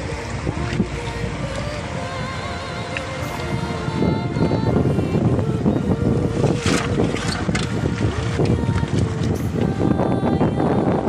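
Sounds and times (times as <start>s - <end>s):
water splashing and sloshing: 0.0s - 11.0s
wind buffeting microphone: 0.0s - 11.0s.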